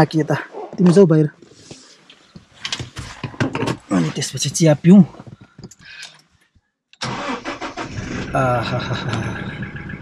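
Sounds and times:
engine cranking and idling: 7.0s - 10.0s.

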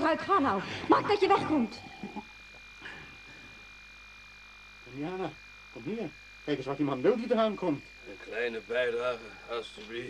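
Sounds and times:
low steady hiss: 0.0s - 10.0s
thin high-pitched whine: 0.0s - 10.0s.

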